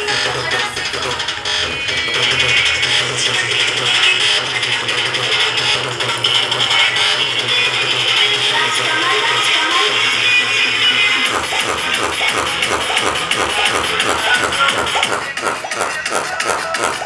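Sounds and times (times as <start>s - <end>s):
song through speakers: 0.0s - 17.0s.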